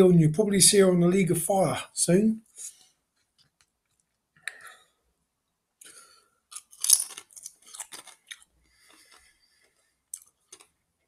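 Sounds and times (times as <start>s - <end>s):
tortilla chips crunching while chewed: 6.5s - 10.8s.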